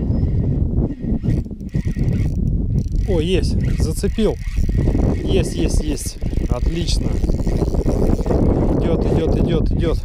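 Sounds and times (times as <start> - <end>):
fishing reel cranking: 1.0 - 9.4
knocking from reel handling: 1.2 - 8.5.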